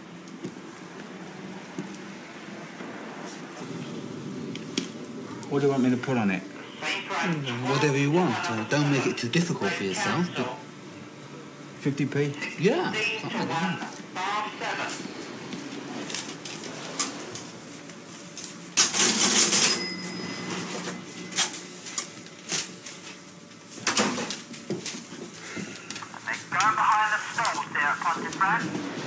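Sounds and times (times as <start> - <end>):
cash register clicks: 18.8 - 22.8
noisy bursts: 25.4 - 29.0.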